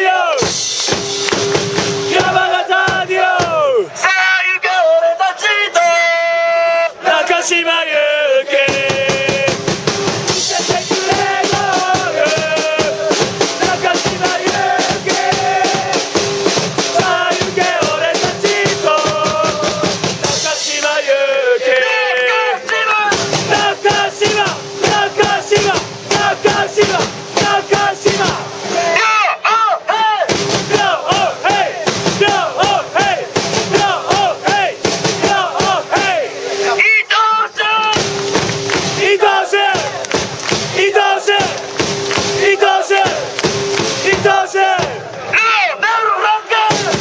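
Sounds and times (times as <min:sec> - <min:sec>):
crowd chanting in unison: 0:00.0 - 0:00.6, 0:01.9 - 0:47.0
steady drum beat: 0:00.0 - 0:03.9, 0:08.5 - 0:21.2, 0:22.6 - 0:29.1, 0:29.9 - 0:45.4, 0:46.2 - 0:47.0.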